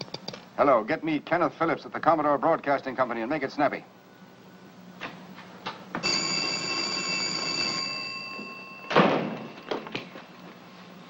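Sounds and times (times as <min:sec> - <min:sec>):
telephone bell ringing: 0:06.0 - 0:09.6.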